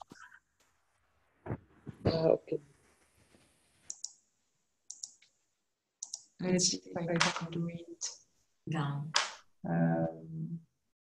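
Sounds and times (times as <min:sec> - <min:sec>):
faint computer mouse clicks: 0:03.9 - 0:04.2, 0:04.9 - 0:05.3, 0:06.0 - 0:06.3.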